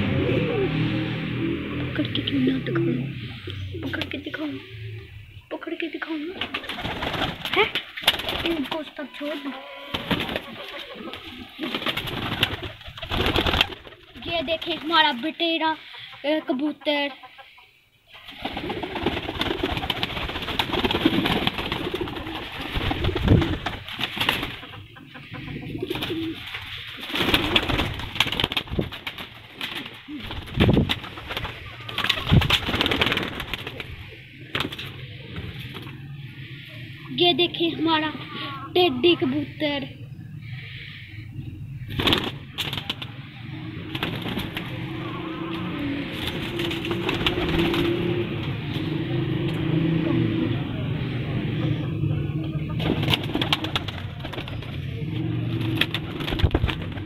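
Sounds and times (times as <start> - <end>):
pigeons cooing: 0.0 - 57.0
wings flapping: 6.1 - 16.2, 18.1 - 36.7, 41.8 - 49.7, 51.7 - 57.0.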